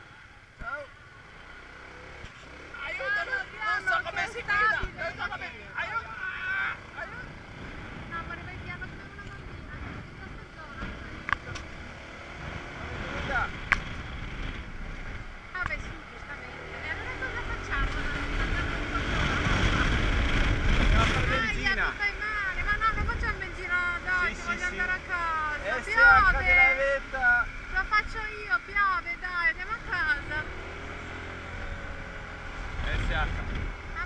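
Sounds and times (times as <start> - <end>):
wind and road noise: 0.0 - 34.0.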